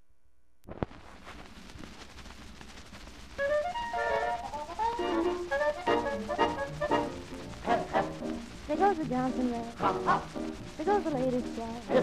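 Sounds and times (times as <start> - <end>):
record surface hiss and crackle: 0.0 - 12.0
band playing: 3.4 - 10.7.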